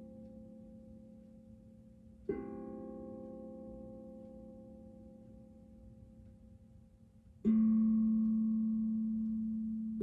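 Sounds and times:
steel tongue drum notes: 0.0s - 10.0s.

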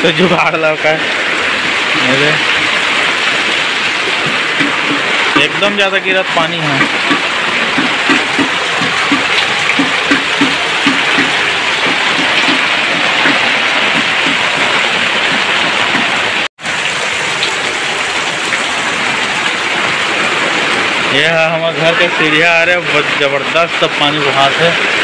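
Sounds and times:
heavy rain pouring: 0.0s - 25.0s
water rushing down stone steps: 0.0s - 25.0s.

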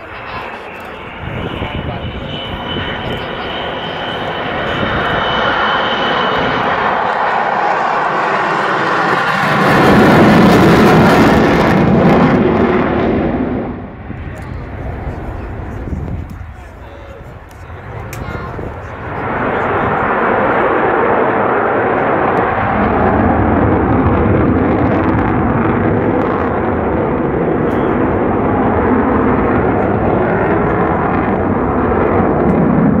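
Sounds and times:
jet aircraft flying past: 0.0s - 33.0s.

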